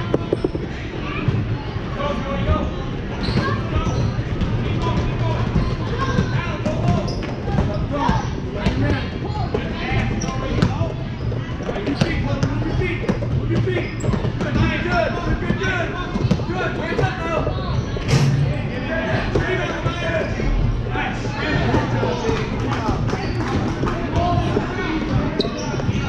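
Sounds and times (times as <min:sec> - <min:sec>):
people talking and calling out: 0:00.0 - 0:26.0.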